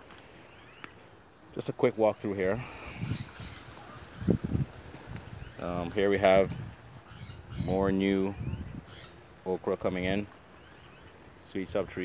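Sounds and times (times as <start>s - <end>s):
wind rumble on microphone: 2.6s - 9.2s.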